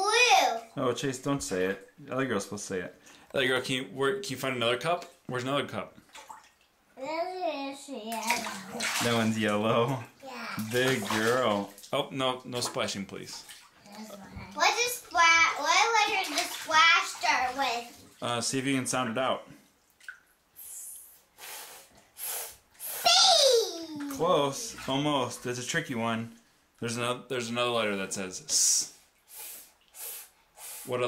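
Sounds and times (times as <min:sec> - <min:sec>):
person hissing s sounds: 0:20.6 - 0:23.3, 0:29.3 - 0:31.0.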